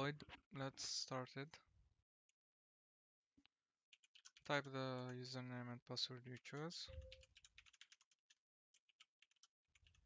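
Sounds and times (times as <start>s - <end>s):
keyboard typing: 3.9s - 5.3s, 6.3s - 10.0s.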